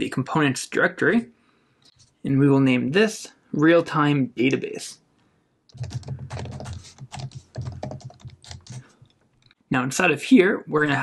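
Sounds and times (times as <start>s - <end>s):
keyboard typing: 5.7s - 9.6s.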